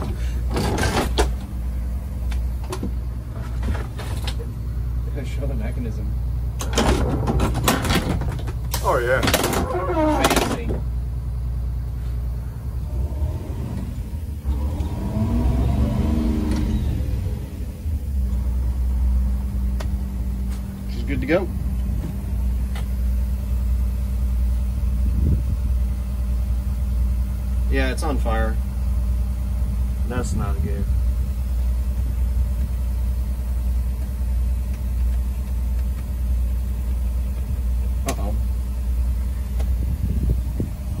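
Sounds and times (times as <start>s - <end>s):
bus engine running and revving: 6.6s - 27.7s, 28.6s - 41.0s.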